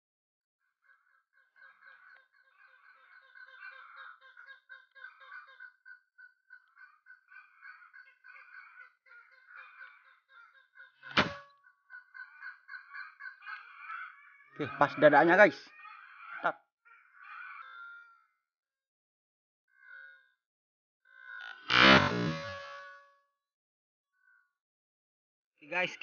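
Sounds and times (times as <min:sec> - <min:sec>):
bird calls chattering: 0:00.9 - 0:18.3
air rifle shot: 0:11.1 - 0:11.4.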